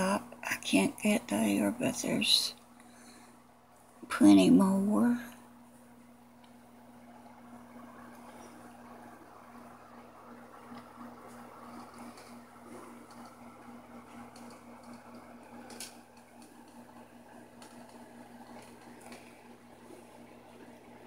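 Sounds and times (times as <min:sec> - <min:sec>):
faint electric hum: 0:00.0 - 0:21.0.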